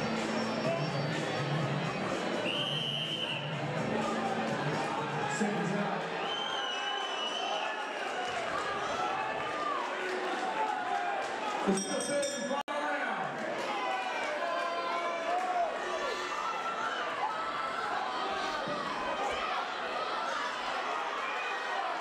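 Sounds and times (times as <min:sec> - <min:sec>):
music playing: 0:00.0 - 0:06.2
crowd shouting and cheering: 0:00.0 - 0:22.0.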